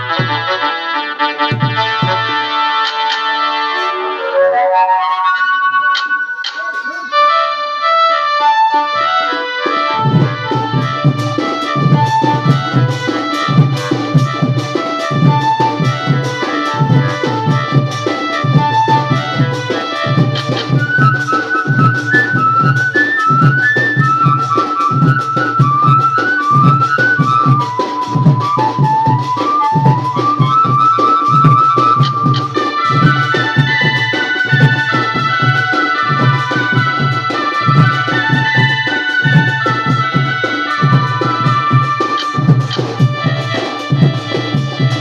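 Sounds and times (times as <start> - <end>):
steady drum beat: 0.0 - 3.7, 9.4 - 45.0
folk band high lead melody: 0.0 - 45.0.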